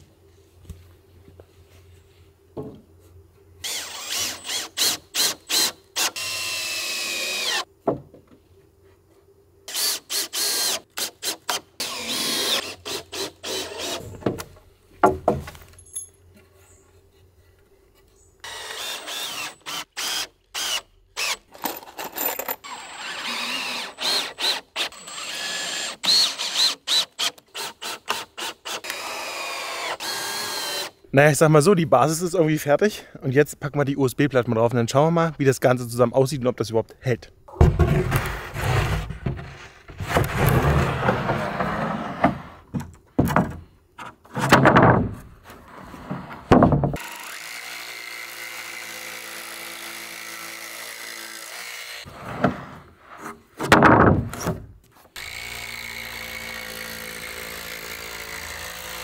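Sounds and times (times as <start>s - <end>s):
cordless drill driving screws: 3.6s - 7.7s, 18.4s - 21.5s, 22.4s - 30.9s.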